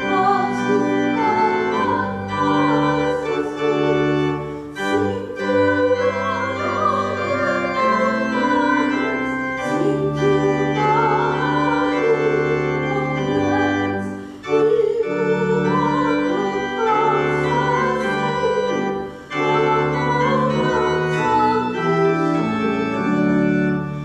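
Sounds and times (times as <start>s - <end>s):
organ chords: 0.0s - 24.0s.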